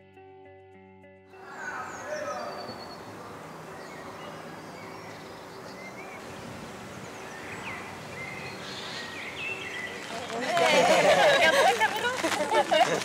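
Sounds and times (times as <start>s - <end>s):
bird chirps: 1.4s - 10.4s
background hiss: 1.4s - 13.0s.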